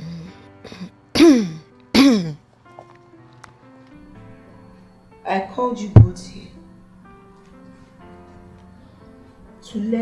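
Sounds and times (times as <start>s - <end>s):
soft background music: 0.0s - 10.0s
person clearing throat: 0.7s - 2.4s.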